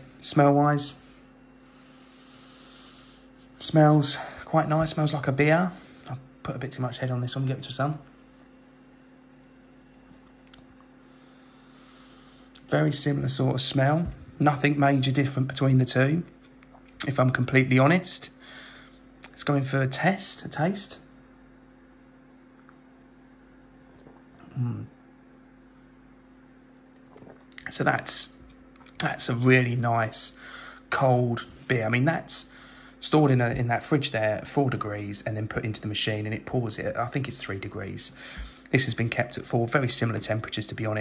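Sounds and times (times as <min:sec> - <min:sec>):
faint steady hum: 0:00.0 - 0:41.0
person sniffing: 0:01.7 - 0:03.5.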